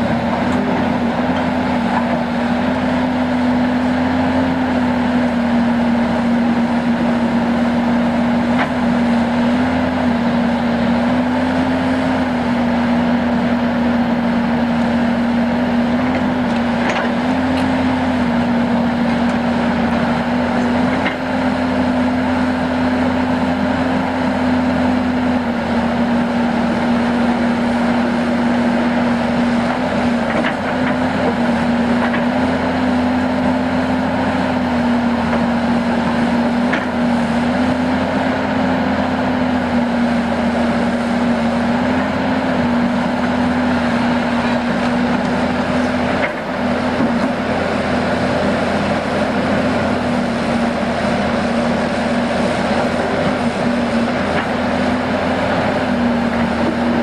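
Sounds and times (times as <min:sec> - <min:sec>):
excavator diesel engine running: 0:00.0 - 0:57.0.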